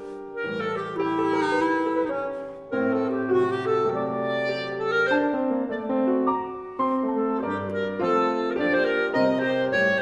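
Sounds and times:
classical instrumental music: 0.0s - 10.0s.

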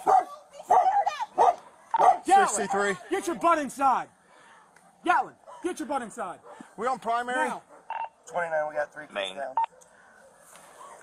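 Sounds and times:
dog barking: 0.0s - 2.3s, 6.4s - 6.7s.

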